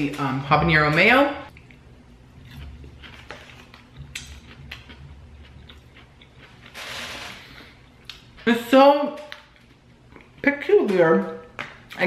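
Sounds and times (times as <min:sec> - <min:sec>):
person chewing: 0:01.5 - 0:08.4, 0:09.4 - 0:10.4.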